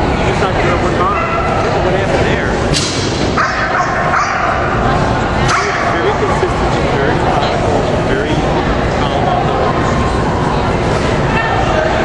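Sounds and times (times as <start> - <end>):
hall noise: 0.0 - 12.0
dog barking: 3.4 - 4.8, 5.5 - 6.0.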